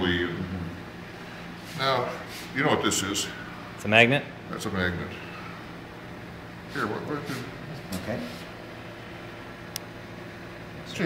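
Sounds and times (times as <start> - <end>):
ventilation and equipment hum: 0.0 - 11.0.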